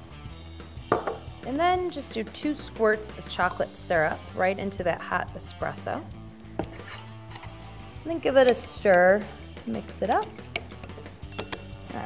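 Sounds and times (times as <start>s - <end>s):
background music with held chords: 0.0s - 12.0s
kitchenware clink: 10.6s - 12.0s.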